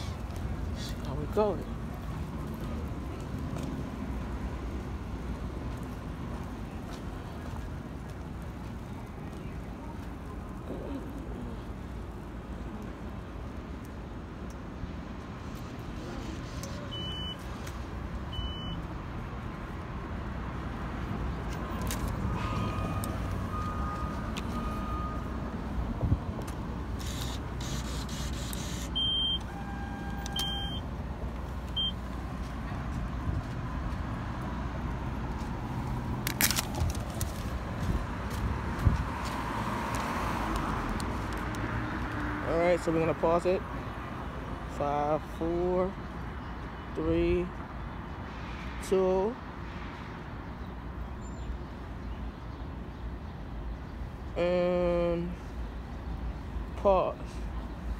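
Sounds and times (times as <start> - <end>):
bus and traffic rumble: 0.0 - 57.9.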